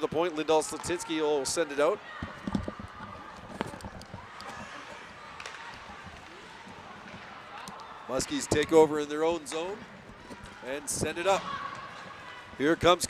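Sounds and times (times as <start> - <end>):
hockey sticks clicking on puck: 0.7 - 1.1, 2.2 - 8.7
crowd murmur: 1.9 - 8.2.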